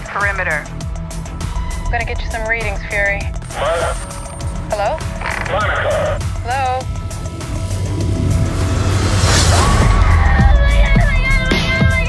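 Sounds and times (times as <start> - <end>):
low rumbling score: 0.0 - 12.0
pitch-bending vocal sounds: 4.7 - 6.2.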